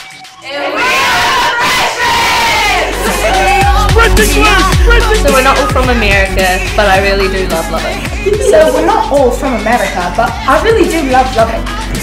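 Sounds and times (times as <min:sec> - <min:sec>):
young women shouting and cheering: 0:00.4 - 0:05.7
music with heavy low beat: 0:02.6 - 0:12.0.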